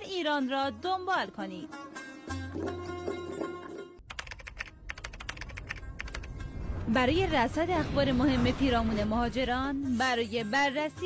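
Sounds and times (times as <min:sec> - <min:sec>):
instrumental music: 0:01.6 - 0:04.1.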